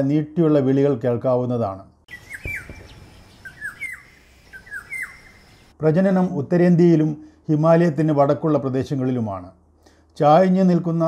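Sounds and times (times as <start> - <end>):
bird whistling song: 2.1 - 5.7
brief low knock: 2.3 - 3.1.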